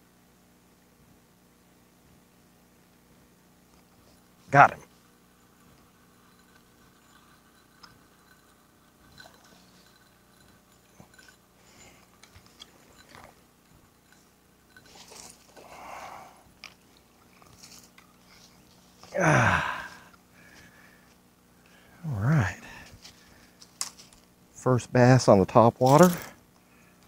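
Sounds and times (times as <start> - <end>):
fishing reel clicks and rustles: 3.7 - 19.2, 22.8 - 24.4, 25.5 - 27.0.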